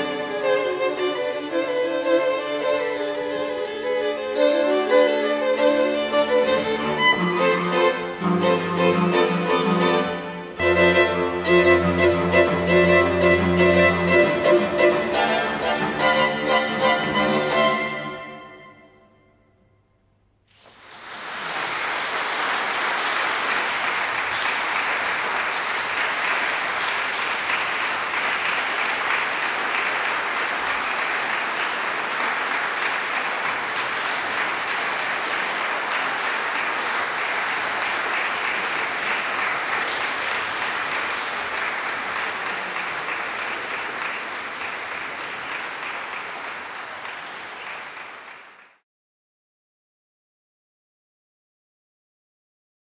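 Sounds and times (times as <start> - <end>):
string quartet music: 0.0 - 18.6
audience applauding: 20.5 - 48.8.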